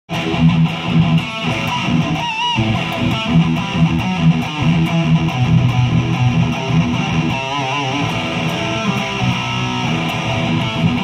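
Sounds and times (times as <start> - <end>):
electric guitar riff: 0.1 - 11.0.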